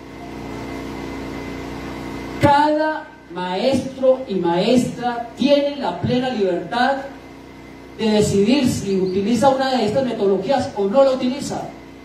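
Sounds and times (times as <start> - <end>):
low engine-like drone: 0.0 - 12.0.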